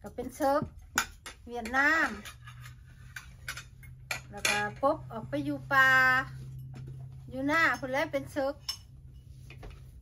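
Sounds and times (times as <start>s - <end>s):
woman speaking: 0.0s - 0.8s, 1.4s - 2.4s, 4.2s - 6.5s, 7.2s - 8.7s
tableware clinking: 0.9s - 4.8s, 7.6s - 9.4s.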